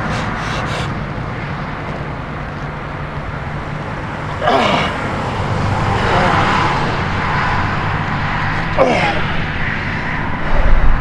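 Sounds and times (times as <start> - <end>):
man's hissing strained breaths: 0.0 - 1.0
steady low rumble: 0.0 - 11.0.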